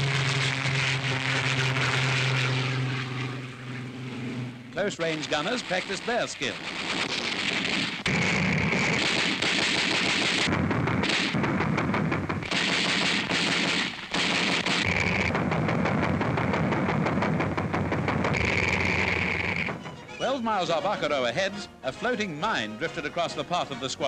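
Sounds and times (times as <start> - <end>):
rapid automatic gunfire: 5.4 - 19.8.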